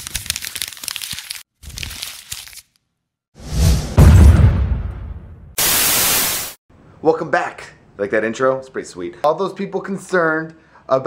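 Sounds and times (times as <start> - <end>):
explosion: 3.4 - 6.5
tv static hiss: 5.6 - 6.6.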